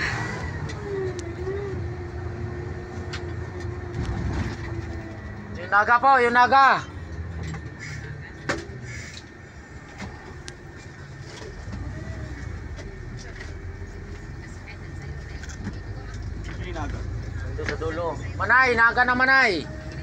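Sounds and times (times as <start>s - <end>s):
bus engine and road noise: 0.0s - 20.0s.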